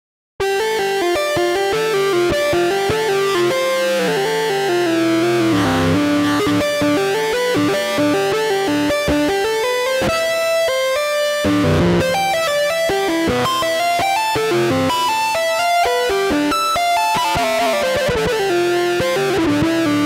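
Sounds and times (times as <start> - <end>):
synthesized clarinet lead: 1.4 - 9.4, 17.0 - 18.1.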